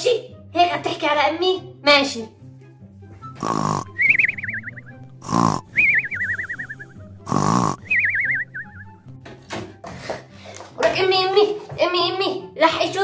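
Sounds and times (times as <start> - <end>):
quiet background music: 0.0 - 13.0
cartoon snoring sound effect: 3.4 - 4.2, 5.2 - 6.6, 7.2 - 7.9.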